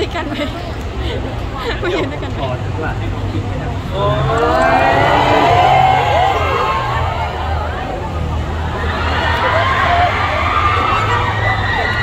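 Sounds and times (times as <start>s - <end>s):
crowd screaming: 3.9s - 12.0s.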